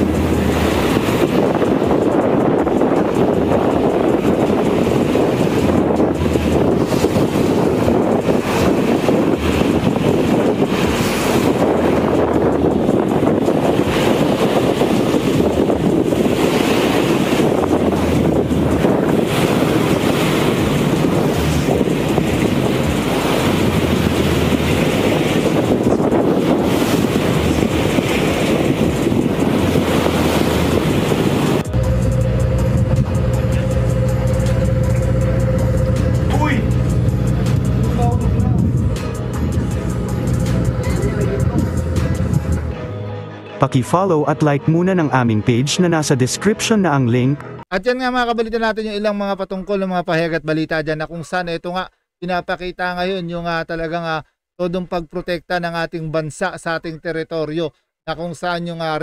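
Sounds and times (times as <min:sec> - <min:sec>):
wind buffeting microphone: 0:00.0 - 0:42.8
boat engine running: 0:00.0 - 0:43.0
steady humming: 0:29.0 - 0:42.7.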